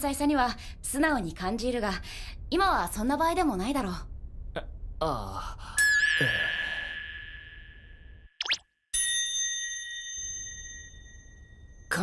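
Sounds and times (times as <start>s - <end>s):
bright ringing ding: 5.8s - 7.9s, 9.0s - 11.9s.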